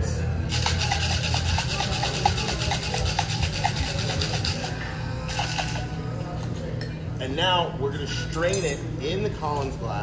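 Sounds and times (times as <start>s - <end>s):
ice rattling in cocktail shaker: 0.5s - 5.9s.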